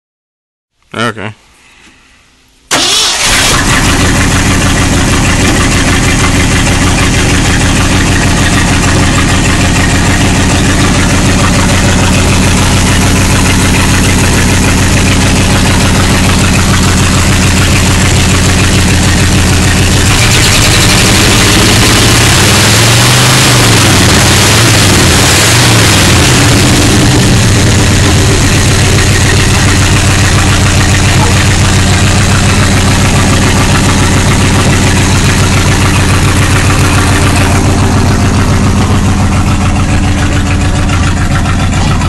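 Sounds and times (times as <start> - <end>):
engine starting and idling: 2.7 - 42.0.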